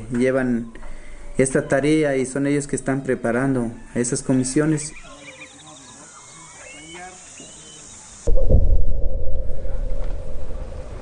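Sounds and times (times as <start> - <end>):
high chirping calls: 4.3 - 8.3
loud low rumble with hum: 8.3 - 11.0.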